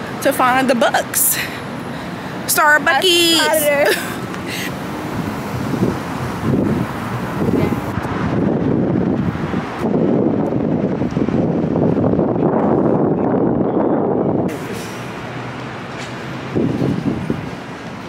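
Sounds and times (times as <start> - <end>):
vehicles passing on street: 0.0 - 18.0
wind on microphone: 5.0 - 14.6, 16.5 - 17.6.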